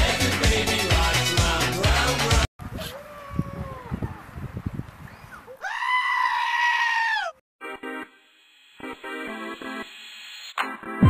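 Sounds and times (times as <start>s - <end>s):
goat bleating: 5.6s - 7.4s.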